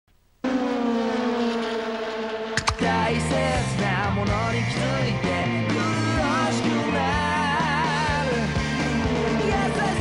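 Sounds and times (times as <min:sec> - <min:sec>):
race car engine passing by: 0:00.4 - 0:03.6.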